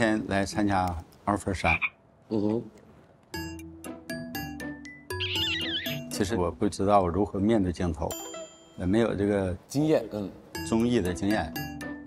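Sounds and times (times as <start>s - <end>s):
wavering high warble: 5.2s - 6.1s.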